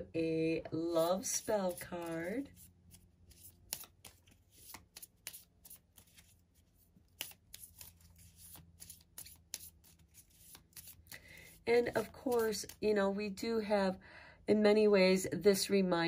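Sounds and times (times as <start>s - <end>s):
shuffling playing cards: 1.0s - 12.8s.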